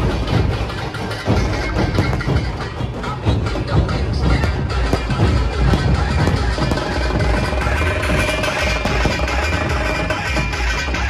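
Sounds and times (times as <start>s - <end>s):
drums beating in dense rhythm: 0.0s - 11.0s.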